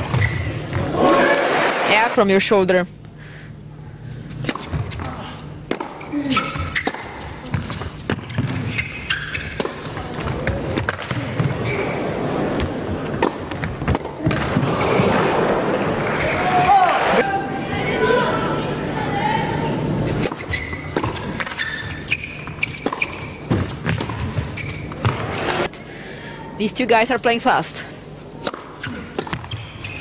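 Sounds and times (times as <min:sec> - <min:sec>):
crowd applause and cheering: 0:00.9 - 0:01.9
rackets striking tennis ball: 0:04.3 - 0:15.4, 0:20.1 - 0:25.7, 0:28.3 - 0:30.0.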